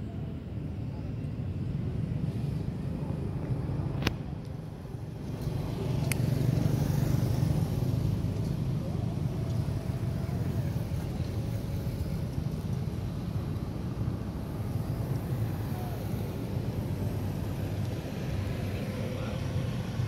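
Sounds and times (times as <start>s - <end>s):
road traffic rumble: 0.0s - 20.0s
motorbike passing: 5.0s - 20.0s.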